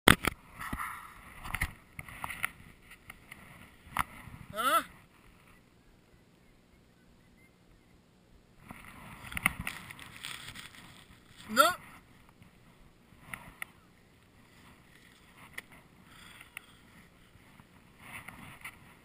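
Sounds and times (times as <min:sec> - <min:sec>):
short vocal sound sliding in pitch: 0:04.5 - 0:04.9.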